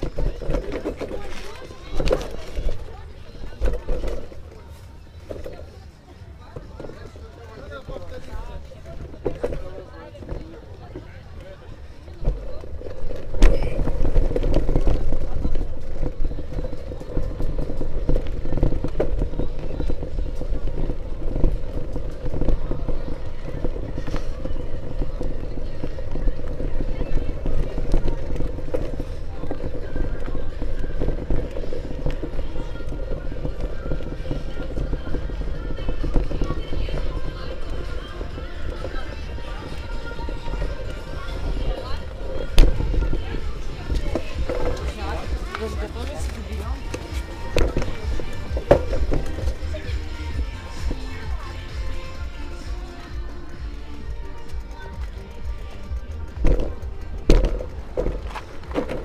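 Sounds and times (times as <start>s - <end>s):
faint music: 0.0s - 59.0s
indistinct voices: 0.0s - 59.0s
wind noise rumble: 12.1s - 52.7s.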